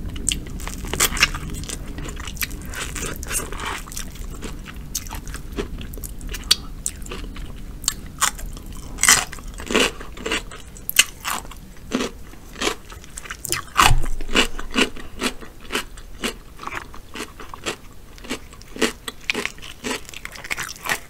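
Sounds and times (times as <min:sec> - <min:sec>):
chewing crisp cucumber: 0:00.1 - 0:21.0.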